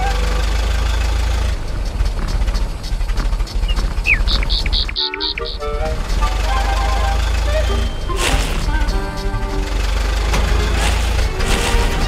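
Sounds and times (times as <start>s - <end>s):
vehicle engine chugging: 0.0s - 12.0s.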